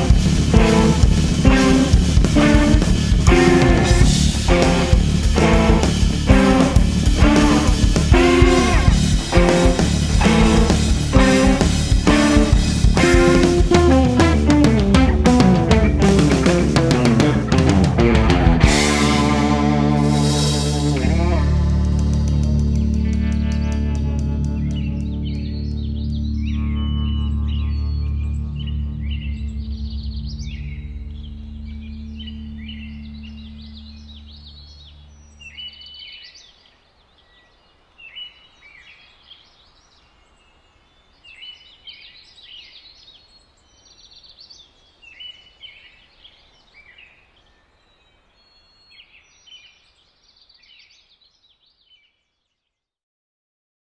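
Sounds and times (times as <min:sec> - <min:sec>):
birds chirping and singing: 0:00.0 - 0:17.3, 0:23.4 - 0:52.2
band chord on bass and guitars: 0:00.0 - 0:34.5.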